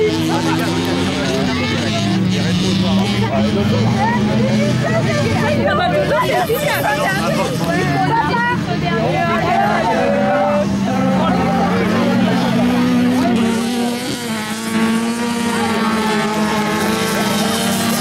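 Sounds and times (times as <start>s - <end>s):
race car engines revving: 0.0s - 18.0s
voices: 0.0s - 18.0s.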